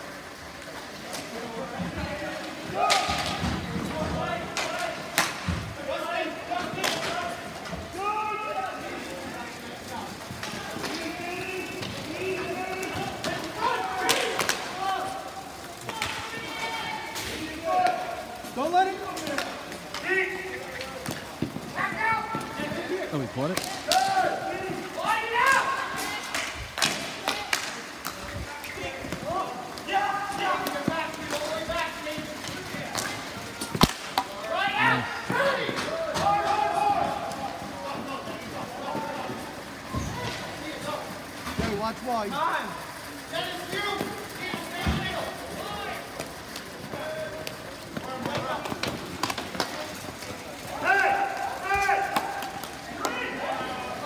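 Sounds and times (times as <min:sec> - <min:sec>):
voices calling out: 0:00.2 - 0:54.0.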